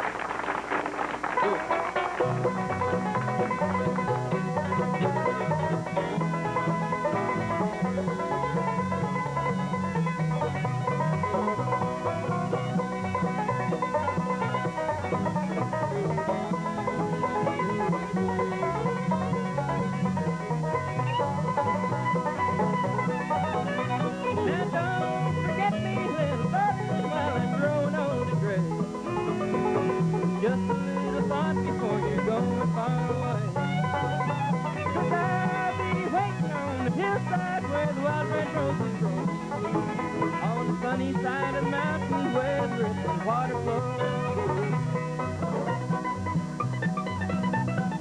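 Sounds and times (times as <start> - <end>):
banjo rolls: 0.0 - 48.0
fiddle: 0.0 - 48.0
guitar: 0.0 - 48.0
upright bass: 0.0 - 48.0.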